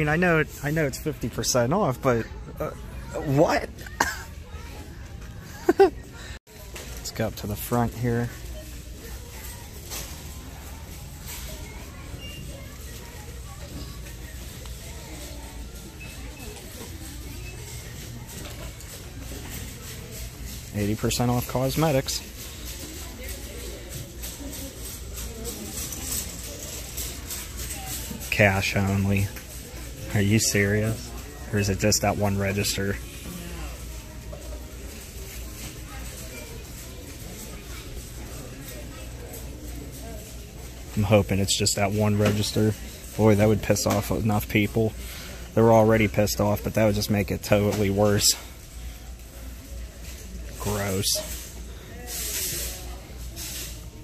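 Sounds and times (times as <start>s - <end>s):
shoppers' indistinct voices: 0.0s - 54.0s.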